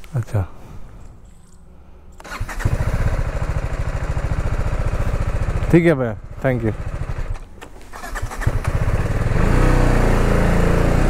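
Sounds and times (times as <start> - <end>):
motorcycle engine starting and idling: 2.2 - 11.0.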